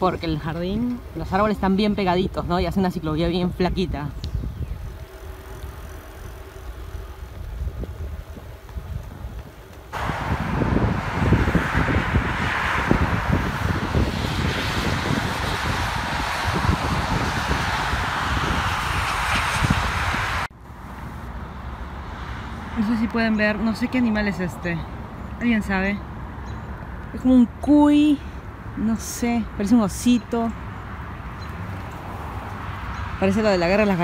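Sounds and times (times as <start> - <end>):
wind rumble on microphone: 0.0 - 20.5
highway traffic noise: 0.0 - 34.0.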